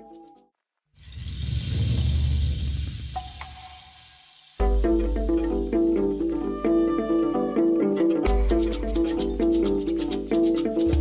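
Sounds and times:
deep thunder rumble: 1.2s - 3.2s.

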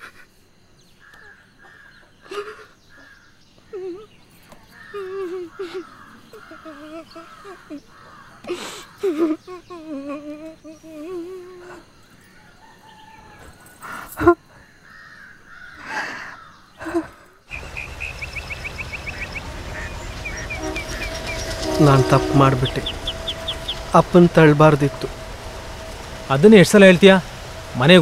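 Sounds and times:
birds chirping: 1.0s - 10.1s, 17.4s - 28.0s
shallow river rushing: 17.5s - 28.0s.

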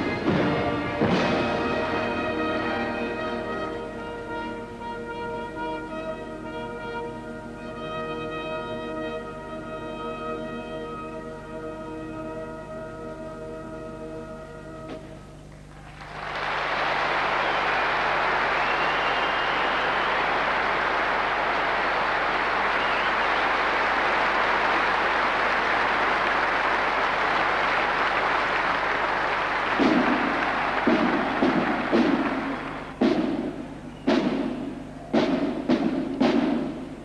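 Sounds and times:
marching band drum beats: 0.0s - 4.3s, 16.2s - 37.0s
audience applauding: 15.7s - 33.0s.

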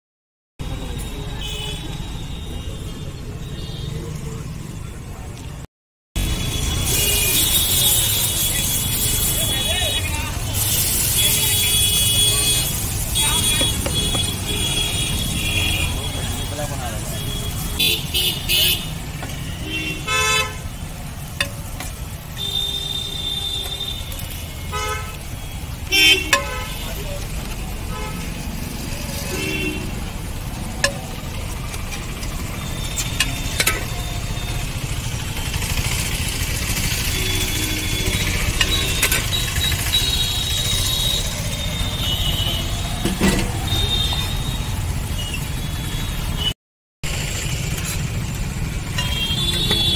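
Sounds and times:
street traffic rumble: 0.6s - 49.9s
vehicle horn toots: 6.2s - 10.2s, 10.8s - 20.7s, 22.4s - 27.0s, 36.8s - 44.8s, 48.9s - 49.9s
metal spatula scraping griddle: 10.4s - 13.8s.

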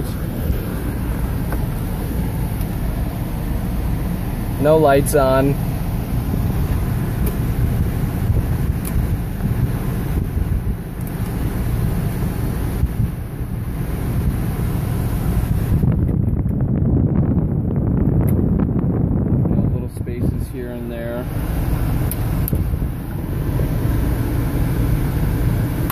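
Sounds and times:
climate control fan hiss: 0.0s - 16.1s, 17.2s - 25.9s
car engine idling rumble: 0.0s - 25.9s.

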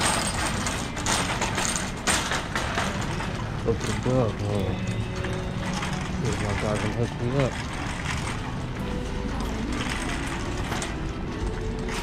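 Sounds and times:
shopping cart wheels rumbling: 0.0s - 12.0s.

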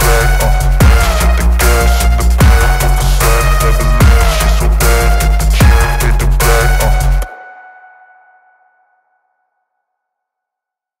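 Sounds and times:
electronic music with heavy bass: 0.0s - 7.4s.

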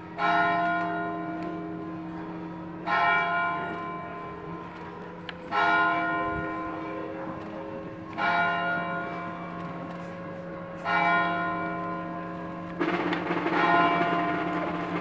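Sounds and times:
church bell tolling: 0.0s - 15.0s.

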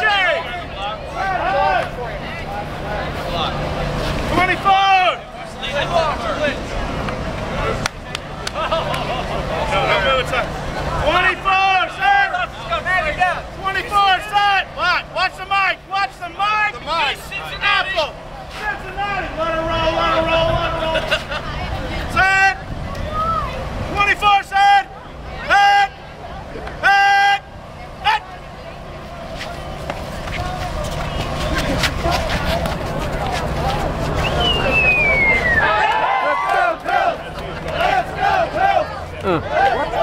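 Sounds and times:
crowd noise: 0.0s - 40.0s
loud shouted calls: 26.8s - 28.4s, 33.6s - 40.0s.

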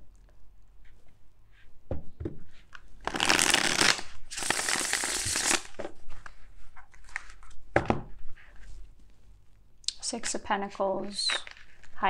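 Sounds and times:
cards being shuffled: 2.7s - 7.6s.

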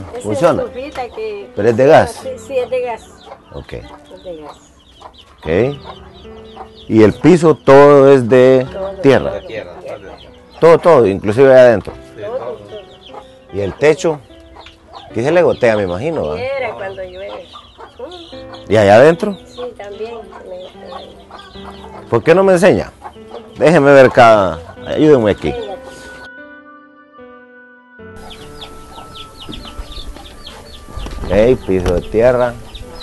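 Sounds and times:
chickens clucking: 0.0s - 26.3s, 28.2s - 33.0s.

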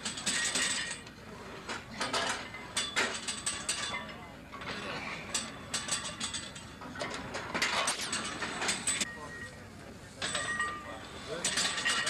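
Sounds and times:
metallic clicks and clanks: 0.0s - 1.1s, 1.7s - 9.1s, 11.4s - 12.0s.

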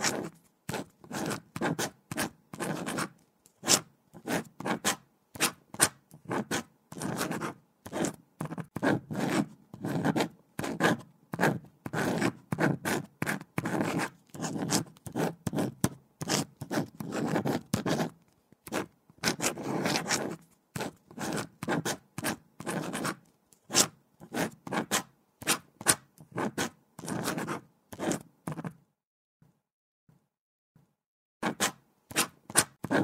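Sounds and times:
pen scratching on paper: 0.0s - 28.8s, 31.4s - 33.0s.

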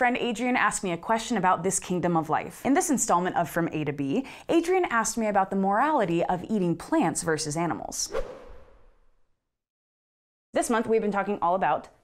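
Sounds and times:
whoosh transition effect: 8.1s - 9.1s.

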